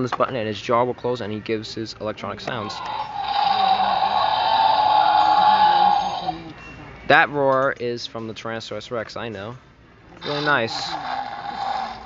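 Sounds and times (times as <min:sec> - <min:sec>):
toy dinosaur roar: 0:02.6 - 0:06.5, 0:10.2 - 0:12.0.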